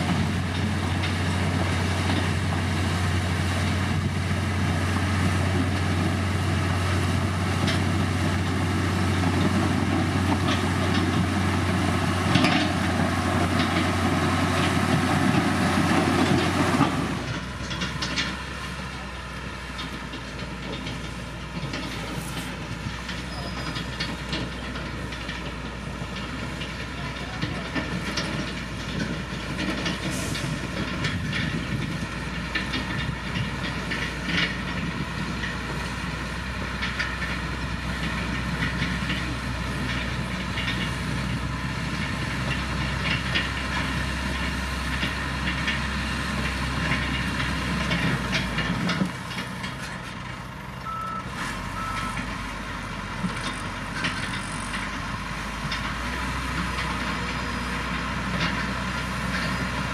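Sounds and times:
diesel engine under load: 0.0 - 59.9.

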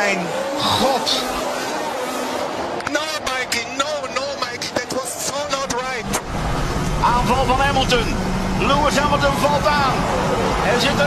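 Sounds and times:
crowd shouting and cheering: 0.0 - 11.0
race car engine rumble: 0.0 - 11.0.

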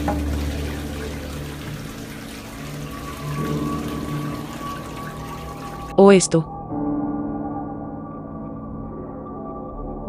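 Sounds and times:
toilet flushing: 0.0 - 6.0
background music with low notes: 0.0 - 10.0.

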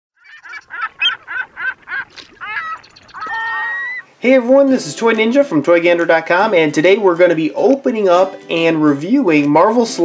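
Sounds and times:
goose honking: 0.2 - 4.1.

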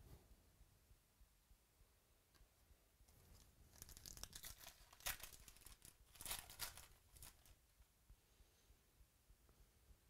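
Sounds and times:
crackling tears of foil: 3.7 - 7.6
foil wrapper tearing and crinkling: 3.7 - 7.6.

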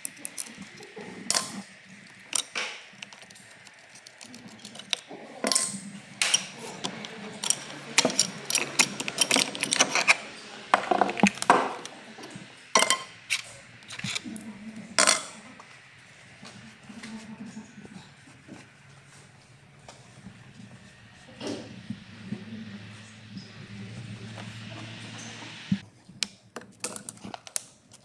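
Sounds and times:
handling noise: 0.0 - 14.4
metal engine parts clinking: 1.2 - 1.6, 2.2 - 10.2, 12.8 - 14.2.

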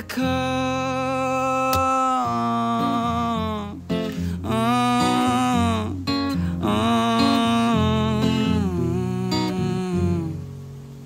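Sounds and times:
man singing wordless notes: 0.0 - 10.6
strummed acoustic guitar: 0.0 - 11.0.

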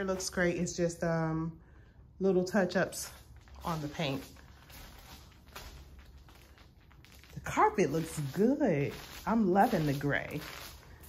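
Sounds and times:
footsteps on plastic sheeting: 2.8 - 11.0.

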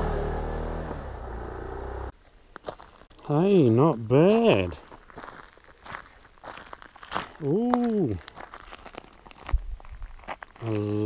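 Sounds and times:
gravel crunching: 0.0 - 11.0.

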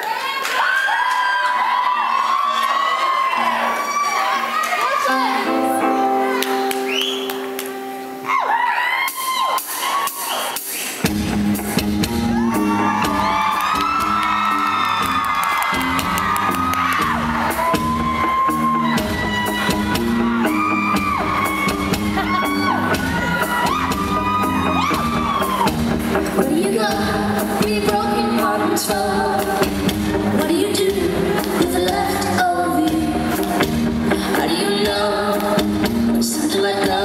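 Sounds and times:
crowd whooping and shouting: 0.0 - 26.4
live rock band playing: 3.5 - 37.0.

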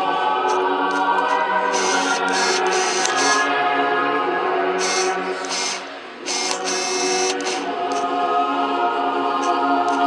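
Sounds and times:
choir singing chant a cappella: 0.0 - 10.0.

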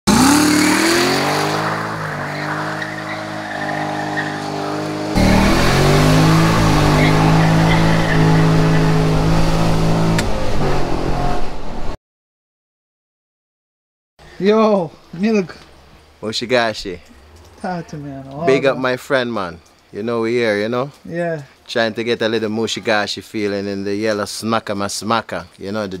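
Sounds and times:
car engine accelerating hard: 0.1 - 12.0.

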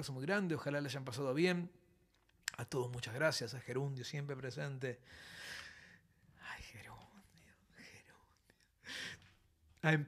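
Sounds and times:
man whispering: 6.3 - 9.4.

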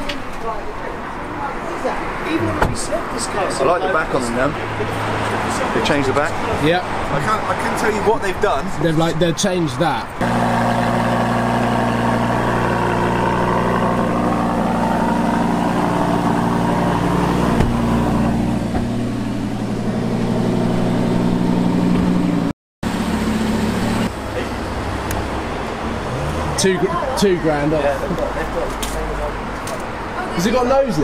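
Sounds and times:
car engine idling: 10.2 - 29.3.

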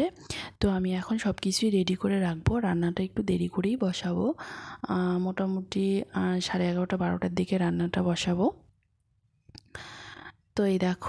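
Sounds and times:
woman speaking: 0.0 - 8.6, 10.6 - 11.0.

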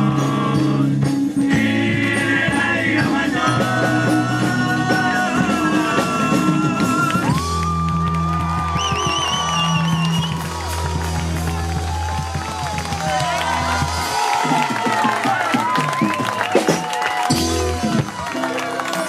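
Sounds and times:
rock band playing chords: 0.0 - 19.0
crowd shouting and cheering: 3.2 - 19.0.

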